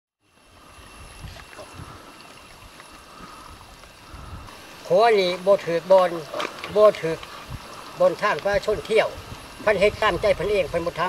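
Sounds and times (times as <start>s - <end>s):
small stream rushing: 0.2s - 11.0s
wind on microphone: 0.6s - 4.6s, 6.7s - 11.0s.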